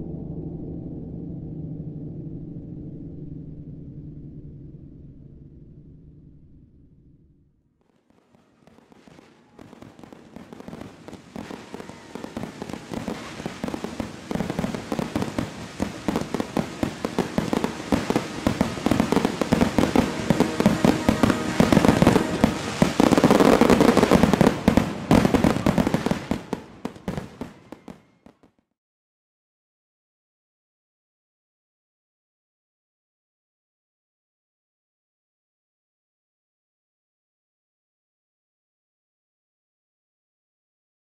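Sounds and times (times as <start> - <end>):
fireworks bangs and crackles: 7.9 - 28.6.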